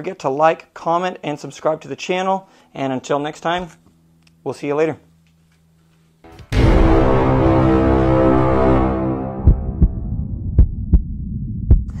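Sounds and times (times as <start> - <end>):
low rumbling drone: 6.3 - 12.0
deep heartbeat-like thumps: 8.5 - 12.0.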